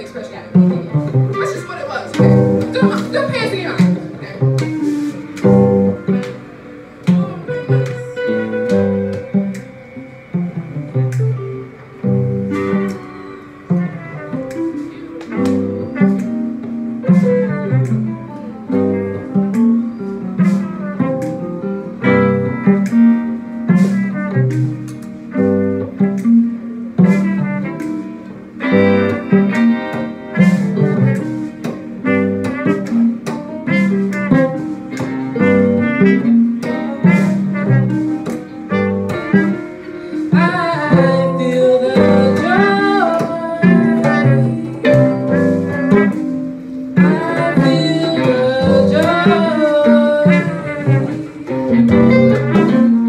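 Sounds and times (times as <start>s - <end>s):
guitar: 0.0s - 53.0s
live band playing instrumental: 0.0s - 53.0s
steady bass line: 0.7s - 13.1s, 13.7s - 53.0s.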